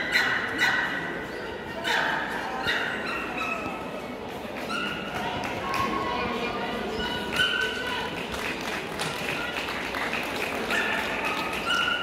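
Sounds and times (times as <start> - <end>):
dogs barking: 0.0 - 1.2, 1.8 - 3.8
people talking in a hall: 0.0 - 12.0.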